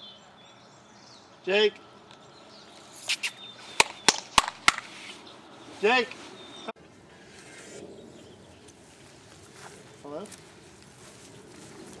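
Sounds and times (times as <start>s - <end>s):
rustle near microphone: 2.7s - 12.0s.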